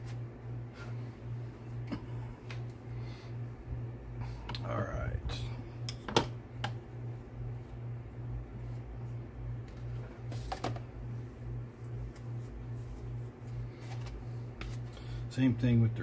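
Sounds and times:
low pulsing hum: 0:00.0 - 0:16.0.

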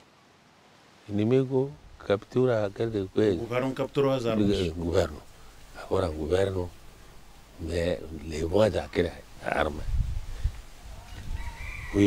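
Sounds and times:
rooster crowing faintly: 0:10.8 - 0:12.0.

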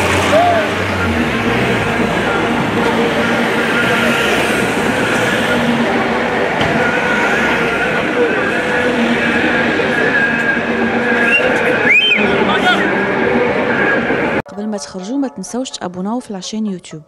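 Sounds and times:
slow vehicles running: 0:00.0 - 0:14.4
crowd voices: 0:00.0 - 0:15.6
rising and falling whistle tones: 0:11.1 - 0:12.8.

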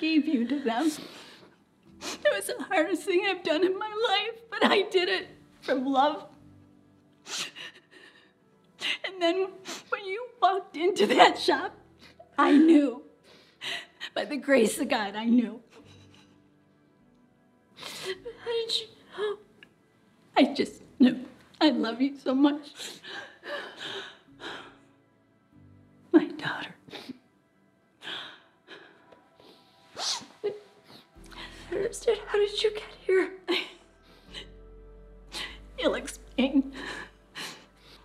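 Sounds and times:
soft film score music: 0:00.0 - 0:38.0
woman sobbing: 0:11.0 - 0:13.0, 0:30.4 - 0:34.6, 0:35.3 - 0:38.0.

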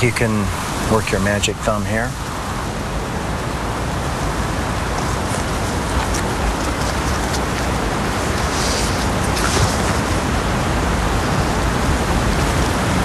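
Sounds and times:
steady rushing outdoor hiss: 0:00.0 - 0:13.0.

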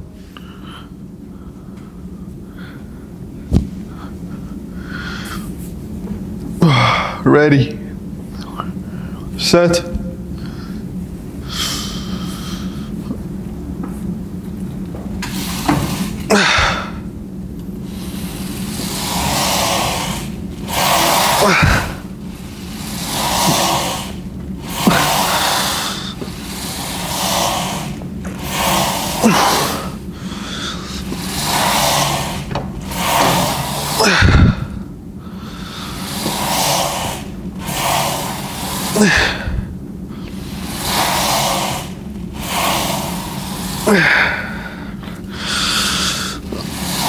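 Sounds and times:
man breathing hard: 0:00.0 - 0:05.8, 0:06.6 - 0:07.3, 0:10.0 - 0:13.3, 0:15.3 - 0:17.2, 0:17.8 - 0:47.0.

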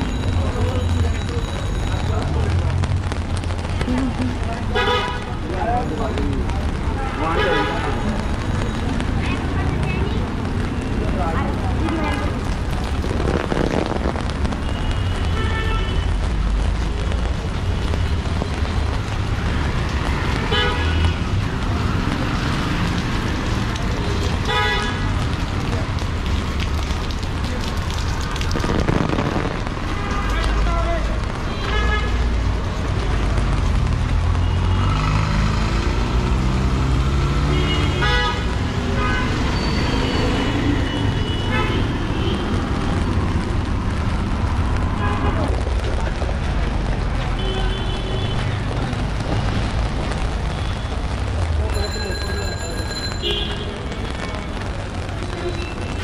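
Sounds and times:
rumble of passing vehicles: 0:00.0 - 0:56.0.

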